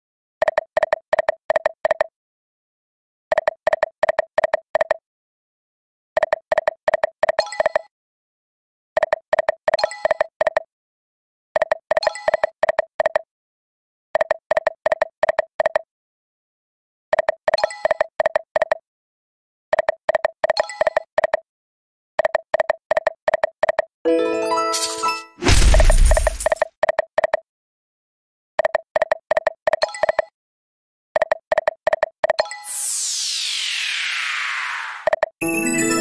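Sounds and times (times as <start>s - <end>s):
slot machine electronic beeps: 24.1s - 25.4s, 35.4s - 36.0s
sparkling chime: 35.4s - 36.0s.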